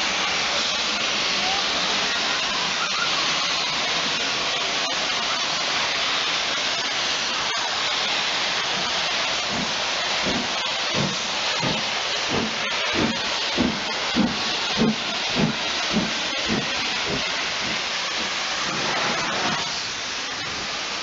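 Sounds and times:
steam hissing: 0:00.0 - 0:21.0
steam locomotive chuffing: 0:00.0 - 0:21.0.

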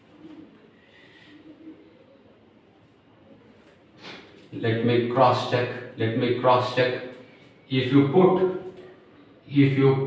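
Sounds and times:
faint pigeon cooing: 0:00.0 - 0:04.6.

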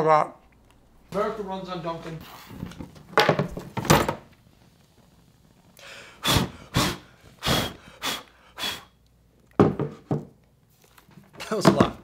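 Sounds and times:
person breathing in short puffs: 0:05.8 - 0:08.9.

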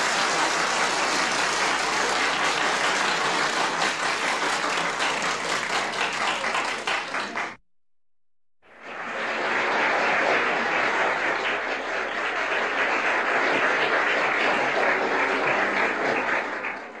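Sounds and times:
crowd applause: 0:00.0 - 0:07.6, 0:08.7 - 0:17.0.

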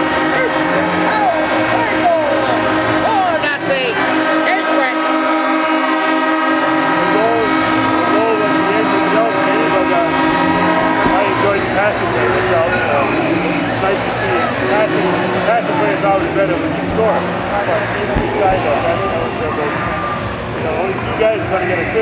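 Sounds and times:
crowd cheering: 0:00.0 - 0:22.0
arena goal horn: 0:02.6 - 0:20.2.

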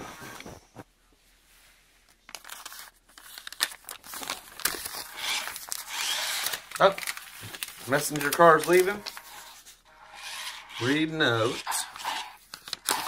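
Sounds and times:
paper crinkling and rustling: 0:02.1 - 0:09.8, 0:11.7 - 0:13.0.

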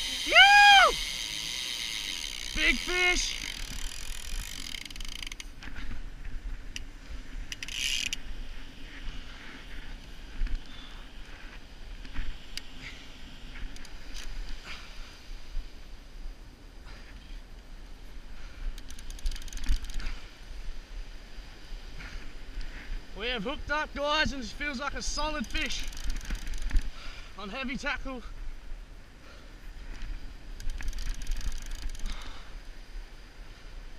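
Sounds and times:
fishing reel clicking: 0:00.0 - 0:05.6, 0:07.5 - 0:08.2, 0:18.8 - 0:20.1, 0:25.2 - 0:26.9, 0:30.6 - 0:32.3.

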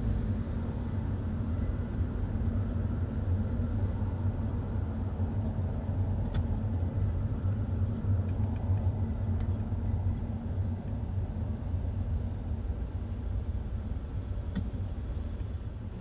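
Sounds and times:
car driving road and engine noise: 0:00.0 - 0:16.0.

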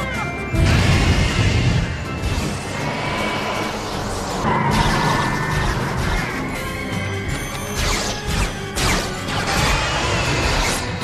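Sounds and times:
film score music: 0:00.0 - 0:11.0
crashing explosions: 0:00.6 - 0:03.8.

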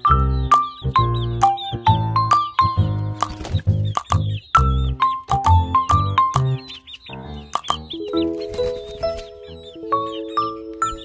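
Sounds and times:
background music: 0:00.0 - 0:11.0
chicks peeping: 0:00.0 - 0:11.0.

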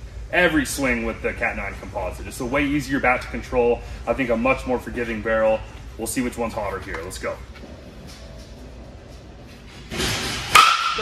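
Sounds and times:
bat striking baseball: 0:10.2 - 0:11.0.

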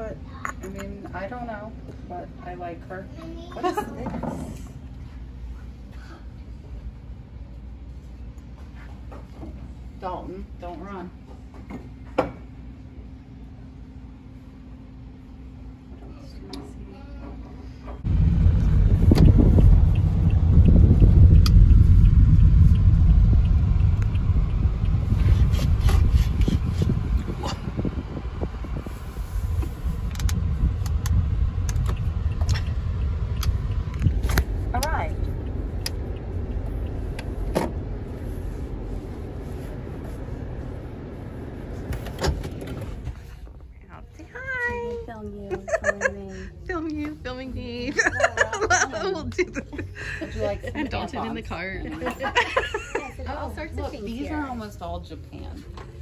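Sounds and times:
car rumble from inside cabin: 0:18.0 - 0:44.9
voices: 0:43.8 - 0:56.0.

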